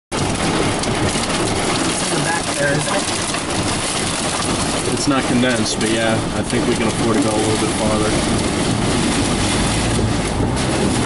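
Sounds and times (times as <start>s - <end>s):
heavy wind-driven rain: 0.1s - 11.0s.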